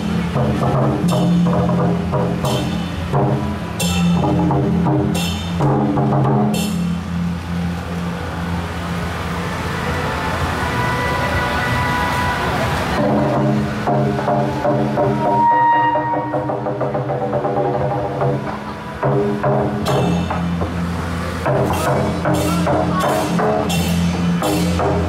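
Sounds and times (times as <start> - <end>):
percussion: 0.0 - 10.0, 11.6 - 25.0
sharp cymbal clash: 21.6 - 25.0.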